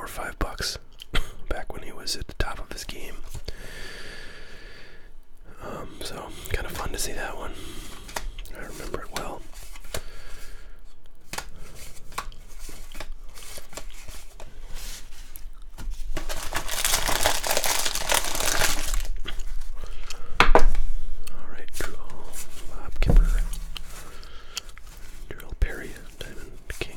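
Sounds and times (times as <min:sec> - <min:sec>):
cardboard cards being handled: 0:11.2 - 0:19.8, 0:21.8 - 0:26.9
plastic wrapper crinkling and tearing: 0:15.2 - 0:20.0.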